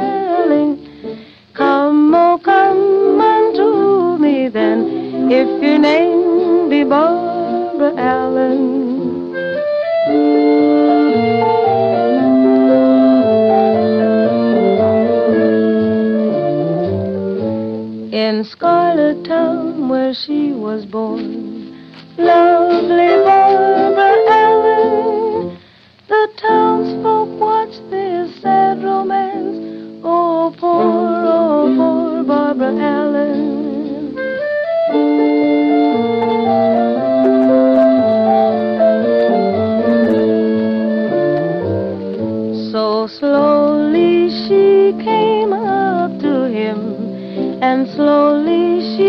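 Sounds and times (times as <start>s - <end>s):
vintage jazz band melody: 0.0s - 49.0s.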